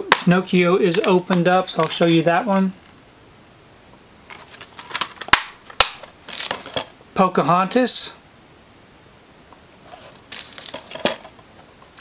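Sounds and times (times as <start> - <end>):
plastic cases rustling and knocking: 0.9 - 2.3, 4.2 - 7.0, 9.8 - 12.0.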